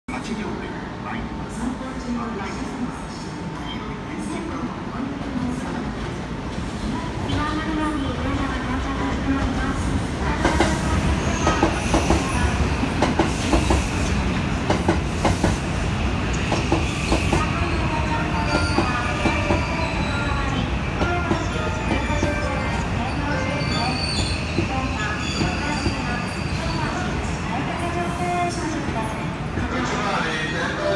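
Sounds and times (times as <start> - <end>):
electric train rumbling: 4.2 - 30.9.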